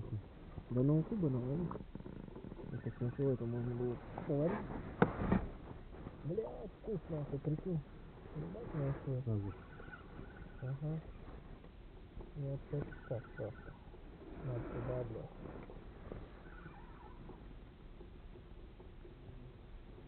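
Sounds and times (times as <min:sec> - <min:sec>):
muffled voices talking: 0:00.0 - 0:05.4, 0:06.0 - 0:11.5, 0:12.2 - 0:16.2.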